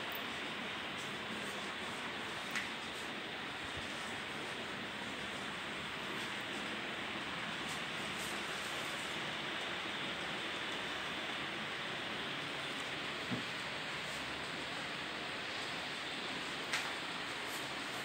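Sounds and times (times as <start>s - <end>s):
steady background hiss: 0.0s - 18.0s.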